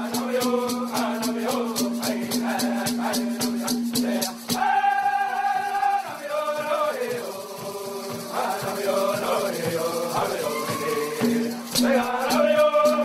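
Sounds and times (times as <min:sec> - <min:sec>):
fast rattle beat: 0:00.0 - 0:13.0
men singing in unison: 0:00.0 - 0:13.0.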